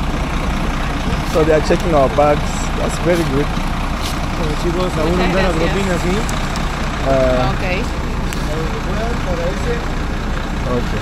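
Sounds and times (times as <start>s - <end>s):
large vehicle engine idling: 0.0s - 11.0s.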